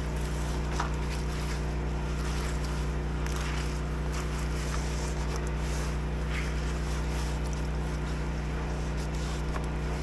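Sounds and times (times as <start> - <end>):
pressure washer engine running: 0.0 - 10.0
wet leaves rustling: 0.0 - 10.0.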